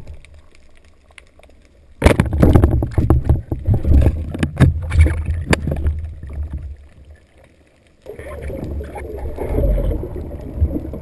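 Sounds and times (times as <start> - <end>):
sharp knocks underwater: 2.0 - 6.8
muffled underwater rumbling: 2.0 - 7.3, 8.0 - 11.0.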